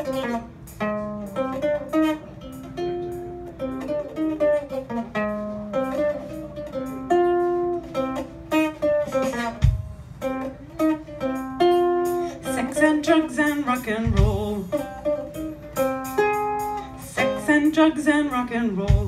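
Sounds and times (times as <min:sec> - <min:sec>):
live drums: 0:00.0 - 0:19.0
ukulele strumming: 0:00.0 - 0:19.0.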